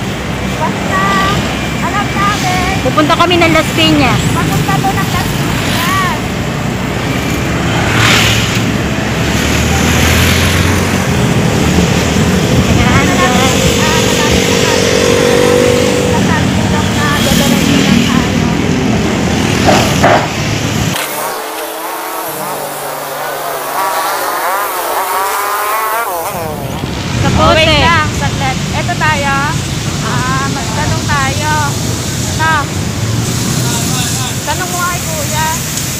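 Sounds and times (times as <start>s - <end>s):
people's voices: 0.0s - 6.6s, 11.0s - 20.3s, 20.9s - 35.7s
motorcycle engine: 0.0s - 35.9s
street sound: 0.0s - 35.9s
wind rush on microphone: 3.8s - 22.9s.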